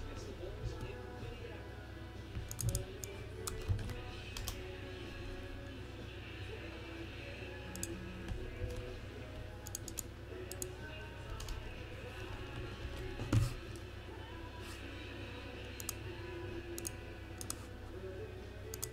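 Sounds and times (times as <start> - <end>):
faint music: 0.0 - 18.9
steady low hum: 0.0 - 18.9
computer keyboard clicks: 2.4 - 4.6, 7.7 - 8.8, 9.6 - 10.7, 16.8 - 17.6.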